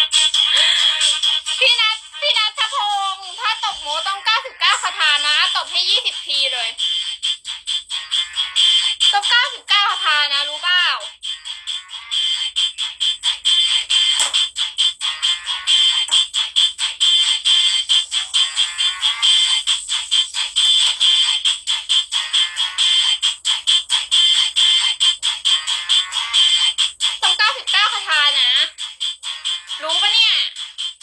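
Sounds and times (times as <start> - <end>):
electronic ringtone-like music: 0.0 - 31.0.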